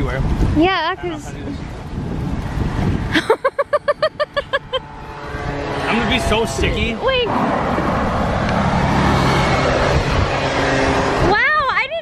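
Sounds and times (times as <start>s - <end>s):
car passing: 0.4s - 12.0s
person laughing: 3.1s - 4.9s.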